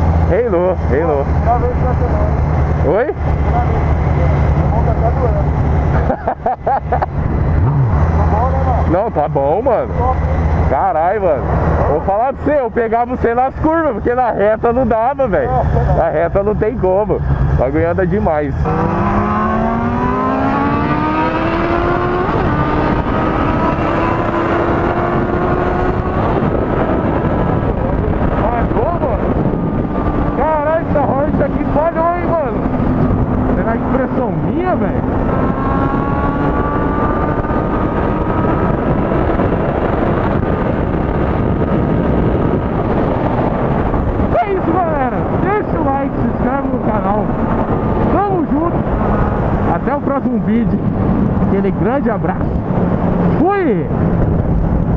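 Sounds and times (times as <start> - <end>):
motorcycle engine cruising: 0.0 - 54.9
wind rush: 0.0 - 54.9.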